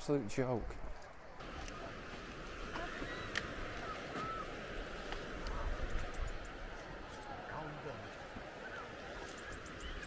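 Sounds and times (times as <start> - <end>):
wind rumbling on microphone: 0.6 - 10.0
footsteps on dirt path: 1.4 - 10.0.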